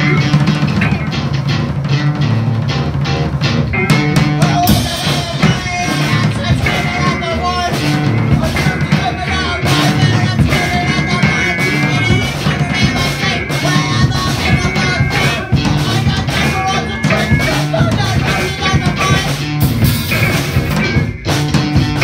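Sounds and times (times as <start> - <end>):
drum kit: 0.0 - 22.0
electric guitar: 0.0 - 22.0.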